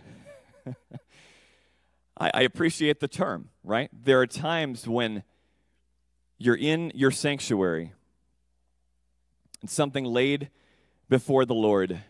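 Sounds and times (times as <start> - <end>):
man laughing softly: 0.0 - 1.1
breathy exhale: 1.1 - 2.0.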